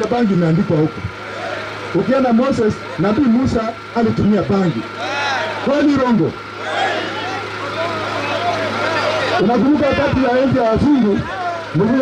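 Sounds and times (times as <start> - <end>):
crowd calling out: 1.2 - 2.1, 4.7 - 12.0.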